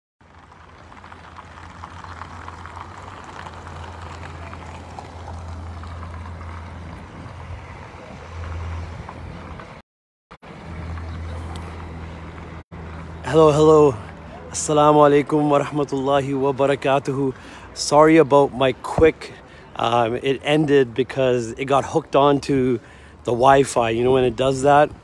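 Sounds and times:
faint traffic noise: 0.2 - 9.8, 10.4 - 25.0.

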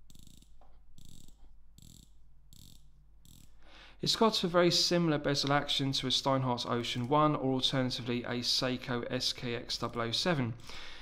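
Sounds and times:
watch bezel ratchet clicks: 0.1 - 3.6.

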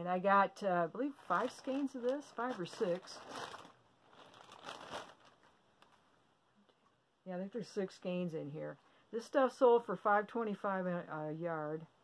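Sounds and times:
bag crinkling: 1.0 - 6.1.

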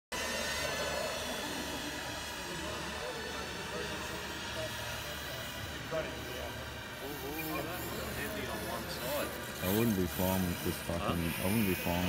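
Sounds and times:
electric model aircraft motors whining: 0.2 - 12.0.

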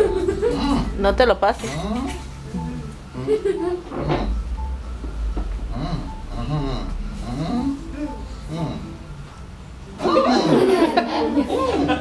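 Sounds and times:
background music: 0.0 - 12.0
indistinct voices: 0.0 - 12.0.

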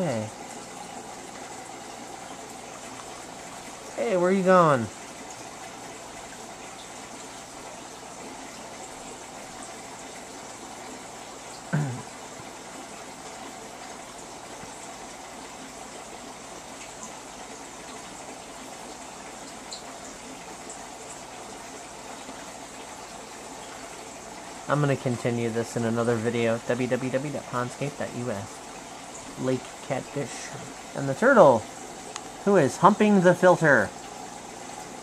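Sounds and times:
aquarium filter water rushing: 0.0 - 35.0.

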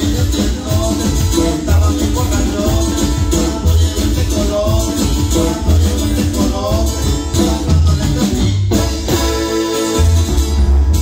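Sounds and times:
drum kit: 0.0 - 11.0
electric bass: 0.0 - 11.0
electric guitar: 0.0 - 11.0.

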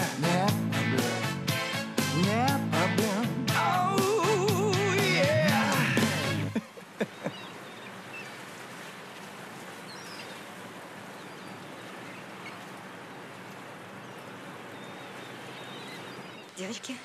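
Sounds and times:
outdoor background noise: 2.8 - 17.0
faint bird chirps: 6.9 - 8.5, 9.8 - 10.5, 11.1 - 13.2, 14.0 - 17.0.

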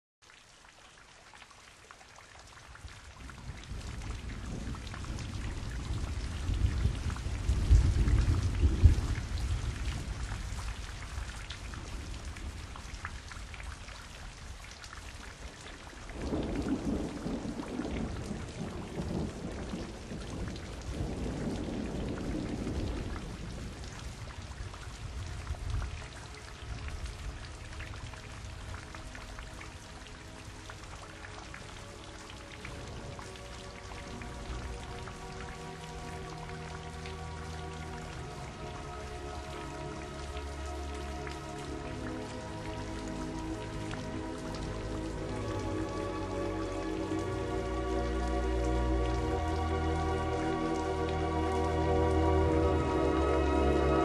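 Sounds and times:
steady rain: 0.2 - 54.0
rolling thunder: 3.3 - 12.8, 16.1 - 28.7.

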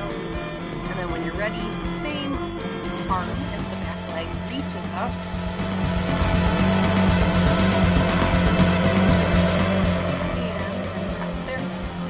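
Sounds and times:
workout music with steady bass: 0.0 - 12.0.

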